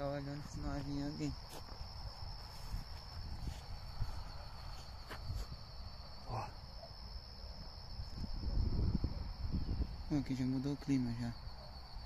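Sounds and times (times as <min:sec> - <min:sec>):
night insects trilling: 0:00.0 - 0:12.0.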